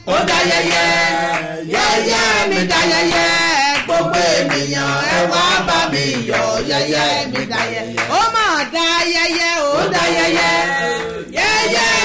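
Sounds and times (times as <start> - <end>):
man and woman singing chant: 0.0 - 12.0.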